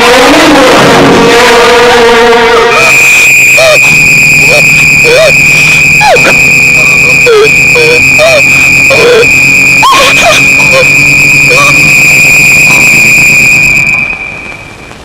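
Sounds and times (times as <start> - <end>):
high-pitched ringing tone: 2.7 - 14.9.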